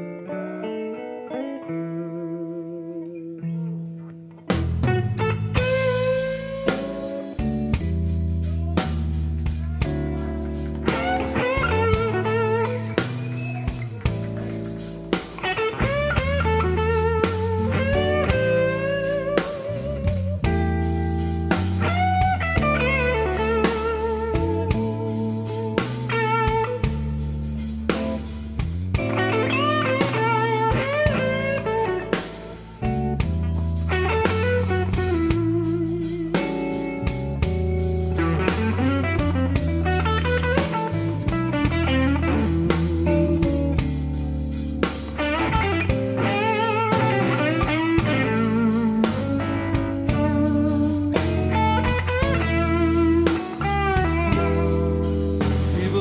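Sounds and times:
electric lead guitar bending notes: 0.0s - 56.0s
slow blues instrumental: 0.0s - 56.0s.

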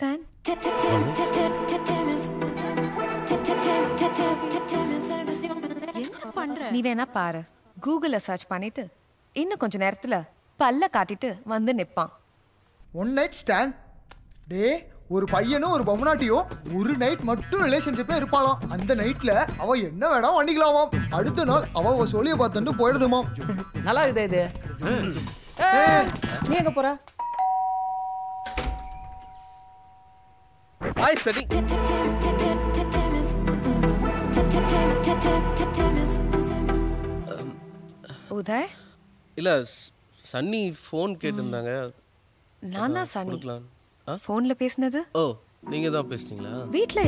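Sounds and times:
crickets chirping: 0.0s - 1.5s, 4.7s - 27.0s, 28.6s - 31.4s, 36.1s - 47.0s
woman speaking: 6.0s - 12.2s, 41.2s - 41.6s, 42.6s - 43.5s, 46.7s - 47.0s
doorbell ding-dong chime: 27.2s - 30.0s.

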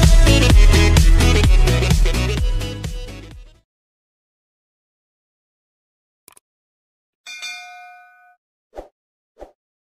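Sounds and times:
bell-like chime: 7.3s - 8.4s.

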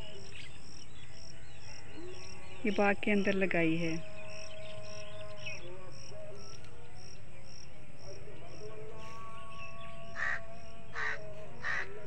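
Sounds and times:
crow cawing: 10.2s - 12.0s.

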